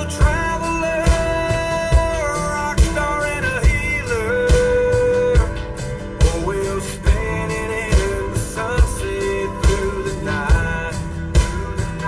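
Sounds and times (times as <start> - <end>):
hick-hop song with guitar: 0.0 - 12.0.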